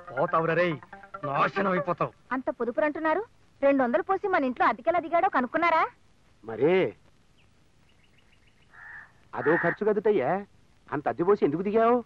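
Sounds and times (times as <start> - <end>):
small bird chirping: 7.2 - 9.7.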